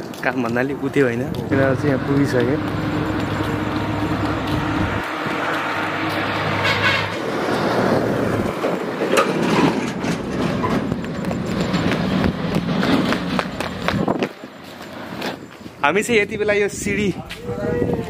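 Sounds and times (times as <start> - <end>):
footsteps on concrete steps: 0.0 - 15.8, 16.9 - 18.0
outdoor noise: 0.0 - 18.0
vehicle engine passing: 0.8 - 15.4.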